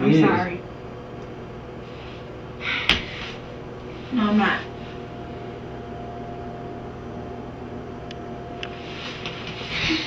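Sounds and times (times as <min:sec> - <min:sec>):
room hum and hiss: 0:00.0 - 0:10.0
faint steady tone: 0:05.1 - 0:08.7.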